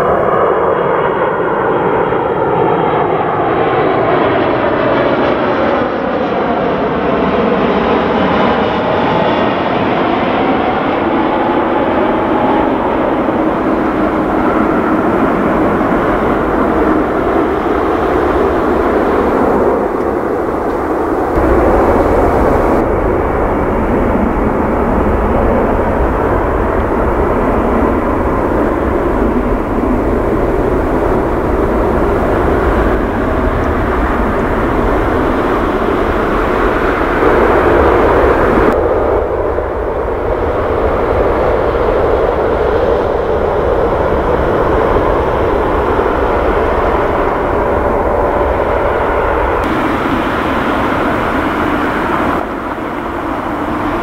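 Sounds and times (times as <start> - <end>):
jet engines rumbling at high power: 0.0 - 54.0
jet engines whining past: 0.0 - 54.0.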